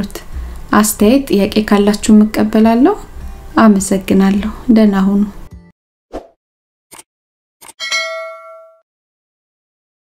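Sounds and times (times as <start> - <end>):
bell-like ding: 7.8 - 8.8.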